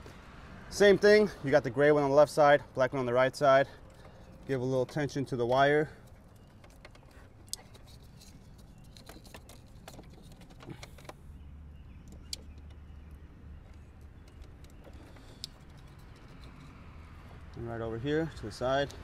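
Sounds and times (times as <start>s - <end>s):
small plastic clicks and ticks: 12.0s - 16.8s.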